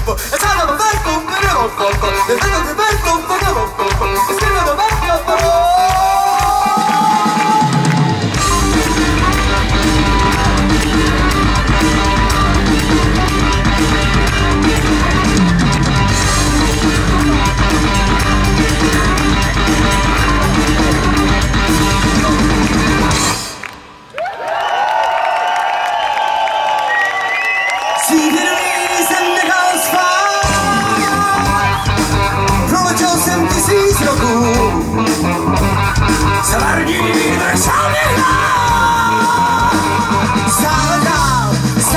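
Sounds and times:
rock band playing live: 0.0 - 24.1, 28.0 - 41.9
electric guitar bends: 6.6 - 24.0, 30.4 - 41.9.

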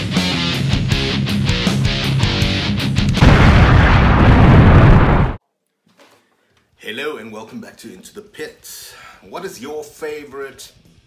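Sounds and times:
loud noisy crash: 3.2 - 5.4.

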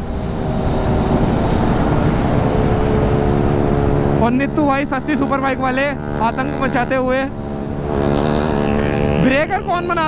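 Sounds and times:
wind rushing over microphone: 0.0 - 9.6
motorcycle engine running: 0.0 - 10.0.

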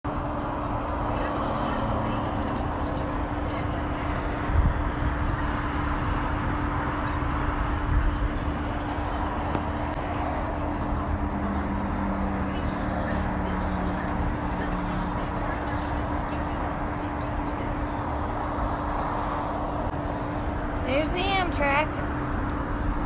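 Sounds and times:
highway traffic roar: 0.0 - 23.0.

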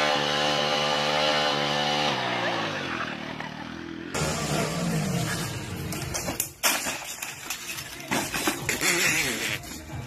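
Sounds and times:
motorcycle engine running: 0.0 - 6.2.

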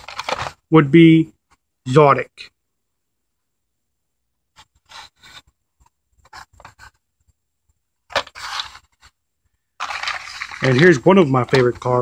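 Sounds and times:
cardboard packs scraping on table: 0.0 - 0.6, 8.1 - 9.2, 9.8 - 12.0.

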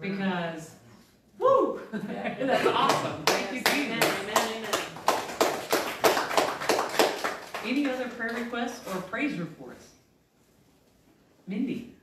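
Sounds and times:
person clapping hands: 2.8 - 8.4.

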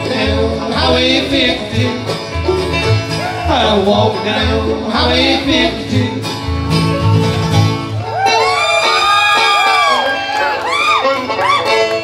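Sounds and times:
bluegrass band playing: 0.0 - 12.0
audience whooping: 7.9 - 12.0.

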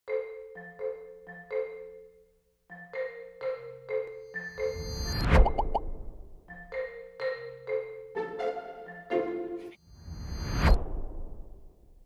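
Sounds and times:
marimba mallet music: 0.1 - 5.0, 6.5 - 9.7
quick rising bloops: 5.2 - 6.6.

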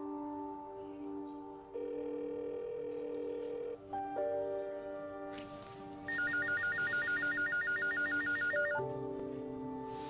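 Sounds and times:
soft background music: 0.0 - 10.0
telephone ringer warbling: 6.1 - 8.8.

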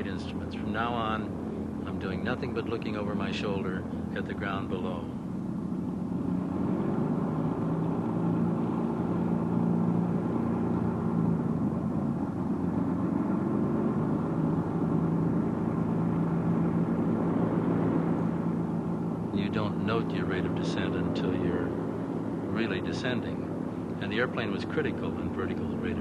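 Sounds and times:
turboprop engine droning: 0.0 - 26.0.

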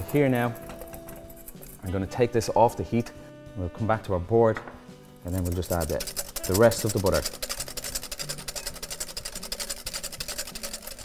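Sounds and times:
whisk scraping glass bowl: 0.0 - 2.6, 5.2 - 11.0.

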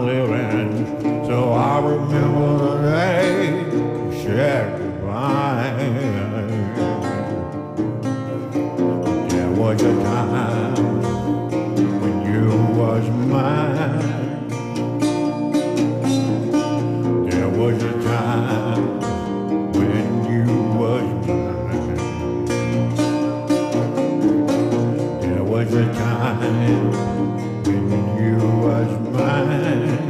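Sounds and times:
fingerpicked resonator guitar blues: 0.0 - 30.0.

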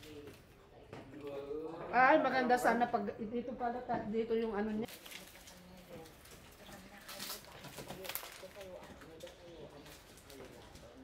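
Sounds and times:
plastic and cardboard rustle: 4.9 - 11.0.

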